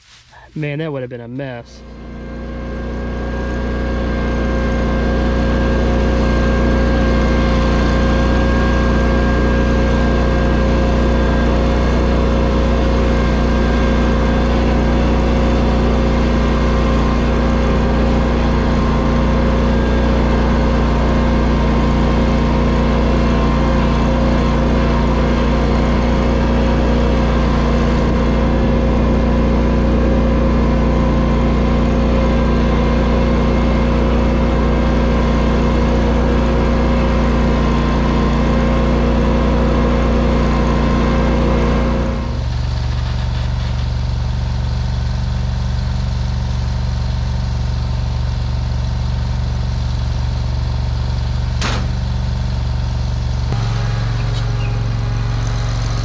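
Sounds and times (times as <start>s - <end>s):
tractor engine running: 0.3s - 56.0s.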